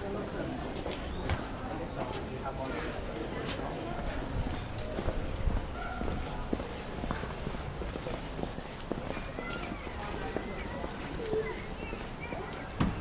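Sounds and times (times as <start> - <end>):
low street rumble: 0.0 - 13.0
people talking faintly: 0.0 - 13.0
footsteps on stone paving: 0.1 - 13.0.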